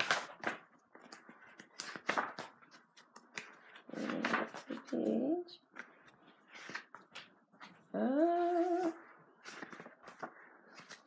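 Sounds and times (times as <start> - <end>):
book pages rustling: 0.0 - 11.0
woman humming: 4.0 - 5.6, 7.9 - 9.0.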